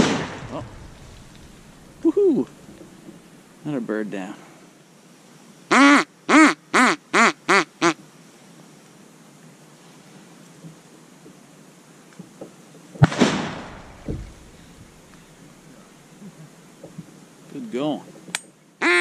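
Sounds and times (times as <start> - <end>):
sharp bang: 0.0 - 3.0, 13.0 - 15.0
duck quacking: 5.7 - 8.0.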